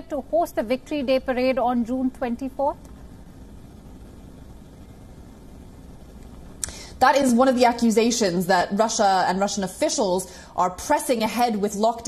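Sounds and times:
broadcast line hum and hiss: 0.0s - 12.0s.

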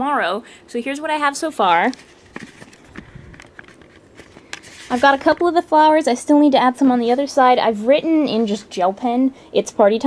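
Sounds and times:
camera handling rumble: 2.0s - 5.5s.

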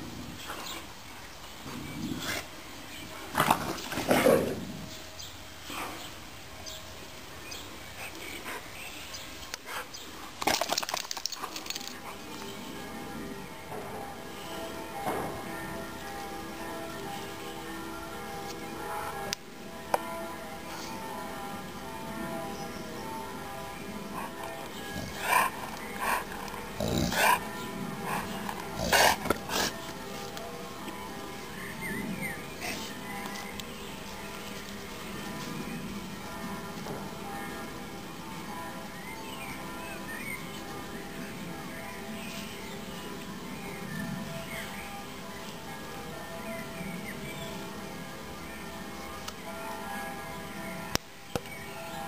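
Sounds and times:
dog growling: 3.3s - 4.9s, 24.2s - 29.8s
dogs play-fighting: 24.2s - 29.8s.

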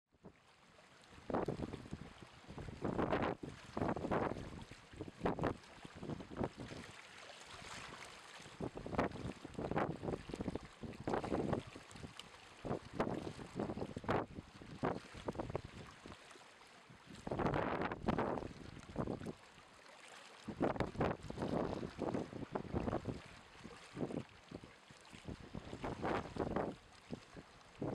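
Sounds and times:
wind buffeting microphone: 1.2s - 6.8s, 8.5s - 16.2s, 17.0s - 19.4s, 20.5s - 27.9s.

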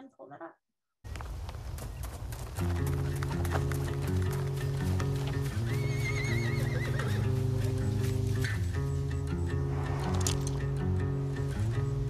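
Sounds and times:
horse whinnying: 5.6s - 8.0s
music of sustained low chords: 7.3s - 12.0s.

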